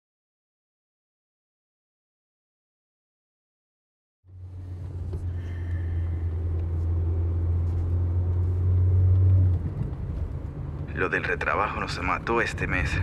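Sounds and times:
car interior engine drone: 4.3s - 13.0s.

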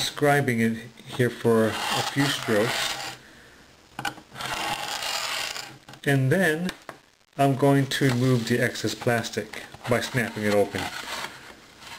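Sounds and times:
knife scraping plastic sheet: 1.6s - 3.2s, 4.3s - 5.8s, 9.8s - 11.9s.

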